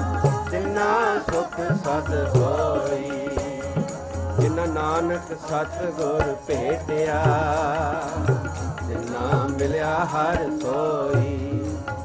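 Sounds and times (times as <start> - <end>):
harmonium held notes: 0.0 - 12.0
voices singing: 0.0 - 12.0.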